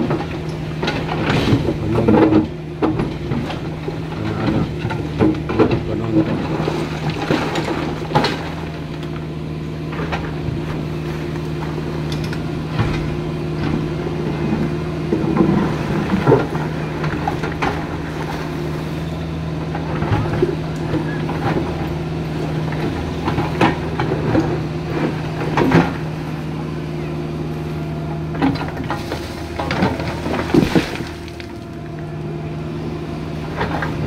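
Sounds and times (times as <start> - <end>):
diesel excavator engine running: 0.0 - 34.0
steel bucket scraping rocks: 28.5 - 31.8.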